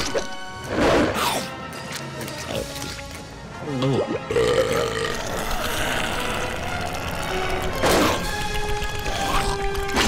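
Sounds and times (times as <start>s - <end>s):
tense background music: 0.0s - 10.0s.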